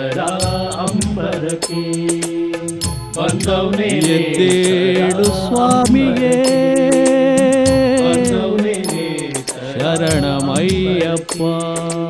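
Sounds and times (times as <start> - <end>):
devotional song melody: 0.0 - 12.0
tapping percussion ticks: 0.0 - 12.0.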